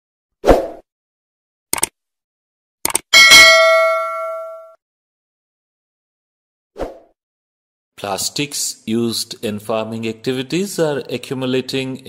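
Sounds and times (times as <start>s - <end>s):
notification bell ding: 3.2s - 4.8s.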